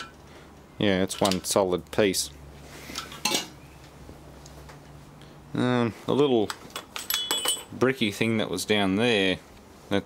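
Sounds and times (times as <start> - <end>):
metallic clink: 6.8 - 7.7.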